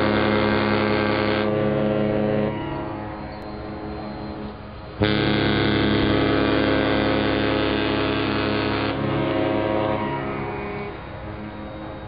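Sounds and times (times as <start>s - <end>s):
ship's horn: 0.0s - 12.0s.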